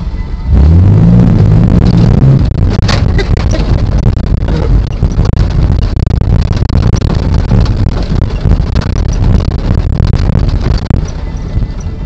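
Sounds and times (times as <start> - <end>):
truck engine revving hard: 0.0 - 11.7.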